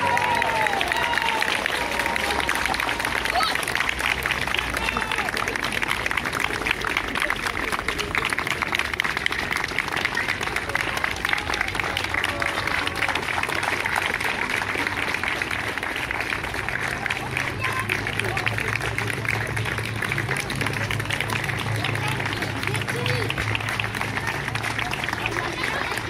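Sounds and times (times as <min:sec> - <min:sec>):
crowd clapping: 0:00.0 - 0:26.0
voices: 0:00.0 - 0:26.0.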